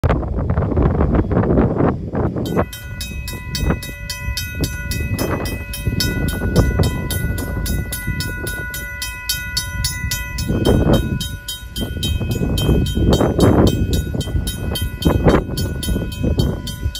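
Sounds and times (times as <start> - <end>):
steady rushing noise: 0.0 - 16.9
mechanical crossing bell ringing: 2.5 - 16.9.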